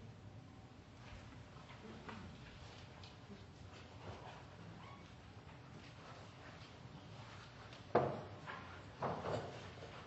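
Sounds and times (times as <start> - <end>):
faint squeak: 4.2 - 5.2.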